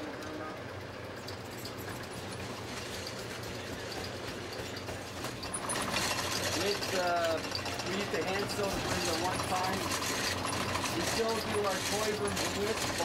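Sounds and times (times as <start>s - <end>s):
fast machine clatter: 0.0s - 13.0s
machine humming: 0.0s - 13.0s.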